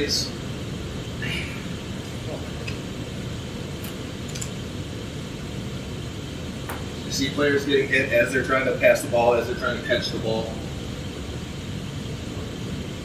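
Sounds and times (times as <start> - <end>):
low ventilation hum: 0.0 - 13.0.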